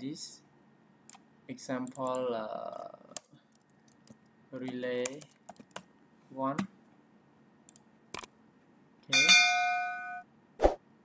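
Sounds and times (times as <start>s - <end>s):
bright bell chime: 9.1s - 10.2s.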